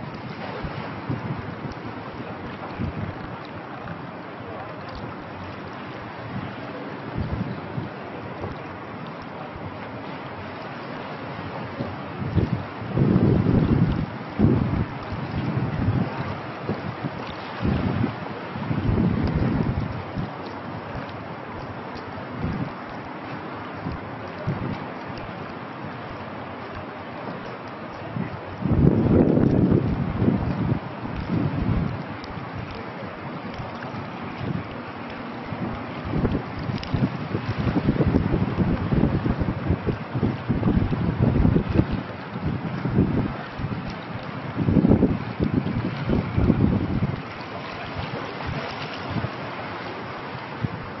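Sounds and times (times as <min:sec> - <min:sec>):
wind buffeting microphone: 0:00.0 - 0:04.2, 0:04.8 - 0:09.9, 0:11.3 - 0:23.1, 0:23.7 - 0:51.0
steady outdoor hiss: 0:00.0 - 0:13.4.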